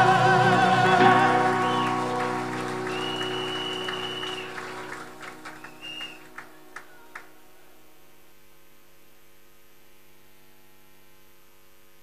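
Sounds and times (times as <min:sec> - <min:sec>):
audience applause: 0:00.0 - 0:07.4
held music chord: 0:00.0 - 0:08.2.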